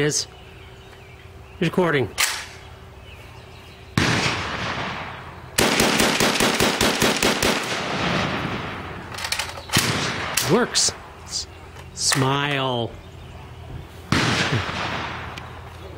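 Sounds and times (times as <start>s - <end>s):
rifle shots with echo: 4.0s - 9.1s, 9.7s - 11.0s, 14.1s - 15.6s.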